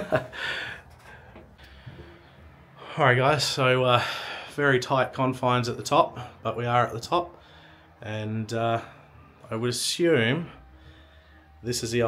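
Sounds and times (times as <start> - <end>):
man breathing hard: 0.2 - 2.9, 4.0 - 4.6, 7.4 - 8.0, 10.6 - 11.6.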